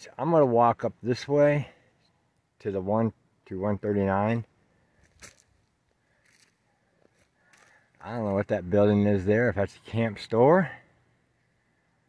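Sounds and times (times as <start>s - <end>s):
faint scuffs: 5.0s - 7.8s.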